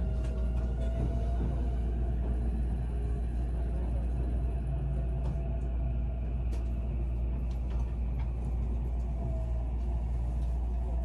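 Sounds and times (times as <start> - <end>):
electric train rumble: 0.0 - 11.0.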